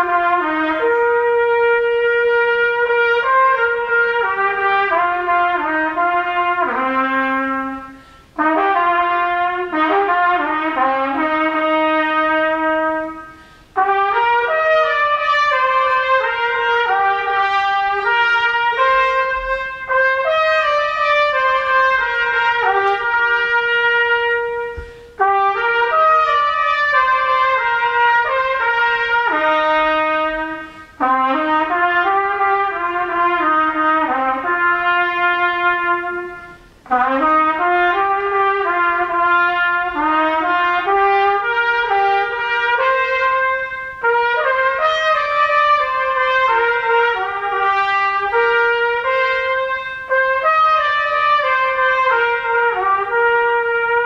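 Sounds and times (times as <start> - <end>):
trumpet playing a melody: 0.0 - 54.0.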